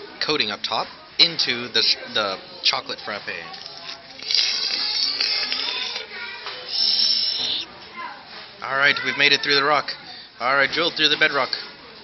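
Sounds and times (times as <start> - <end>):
plastic straw squeaking through ice: 3.6 - 6.1, 6.7 - 7.7.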